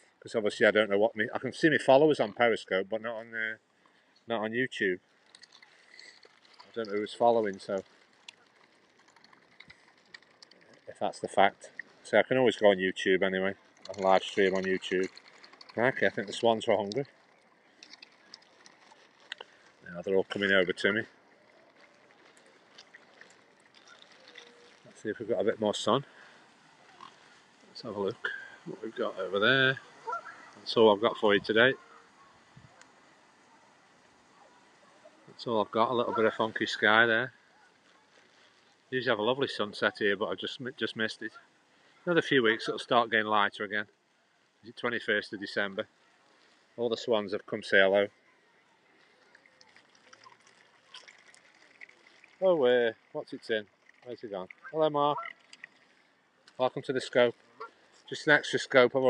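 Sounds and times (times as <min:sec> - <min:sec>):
faint outdoor ambience: 0:00.0 - 0:59.0
water splashing and dabbling: 0:04.9 - 0:48.2, 0:48.8 - 0:59.0
faint ticks: 0:05.0 - 0:25.1, 0:48.8 - 0:58.4.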